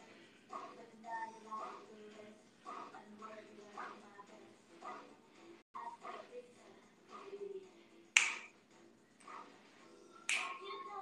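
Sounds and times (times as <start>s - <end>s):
sharp loud snap: 8.2s - 8.5s, 10.3s - 10.6s.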